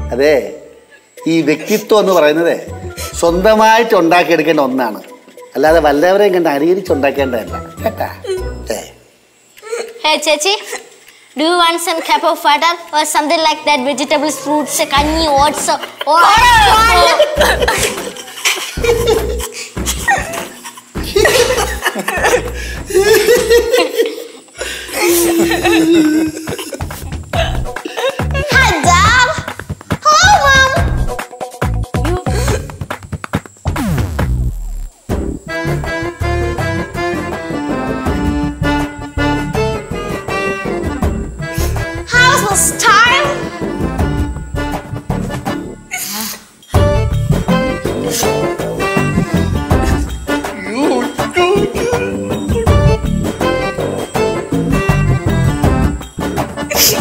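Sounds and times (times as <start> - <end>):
background music: 0.0 - 9.5, 12.8 - 57.0
people laughing: 15.7 - 28.6.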